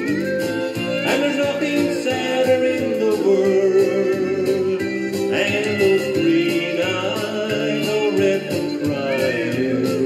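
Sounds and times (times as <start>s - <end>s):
country song with guitar: 0.0s - 10.0s.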